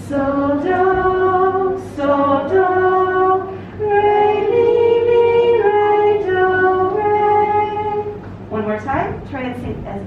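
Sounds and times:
woman singing long held notes: 0.0 - 8.2.

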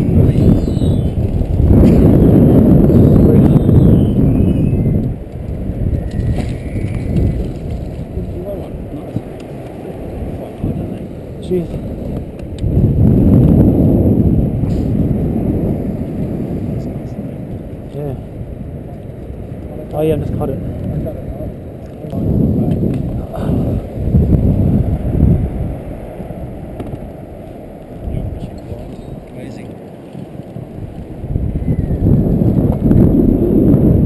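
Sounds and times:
wind rumbling on microphone: 0.0 - 34.0.

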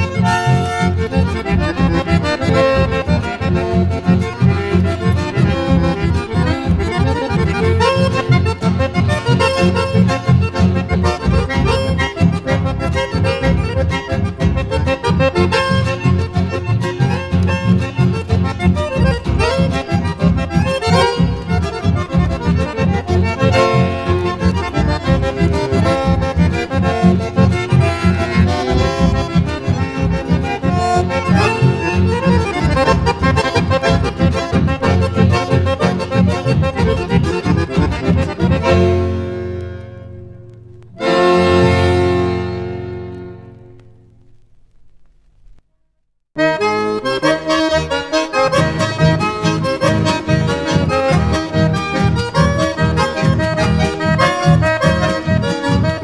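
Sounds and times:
accordion folk music: 0.0 - 45.1, 46.4 - 56.0.

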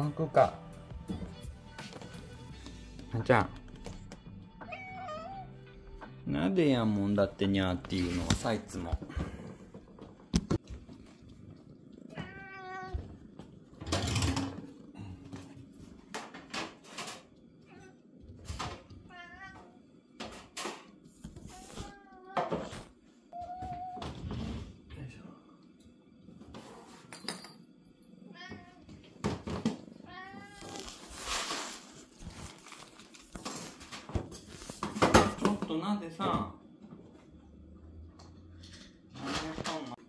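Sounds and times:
cat meowing: 4.6 - 5.7, 12.0 - 13.2, 19.0 - 19.9, 30.0 - 31.0.

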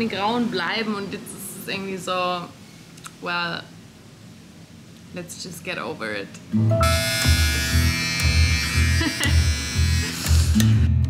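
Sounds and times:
electric hair clipper humming: 6.7 - 10.9.

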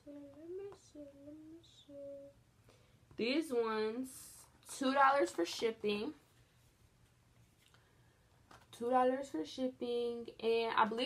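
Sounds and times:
woman humming softly: 0.0 - 2.4.

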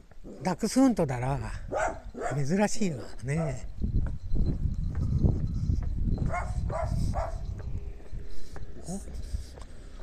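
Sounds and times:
wind rumble on microphone: 1.5 - 10.0
dog barking: 1.7 - 2.5, 6.3 - 7.4
microphone handling noise: 3.7 - 9.8.

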